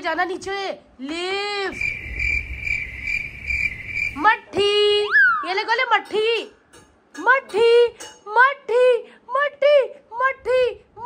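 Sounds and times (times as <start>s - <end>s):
cricket chirping: 1.7s - 4.3s.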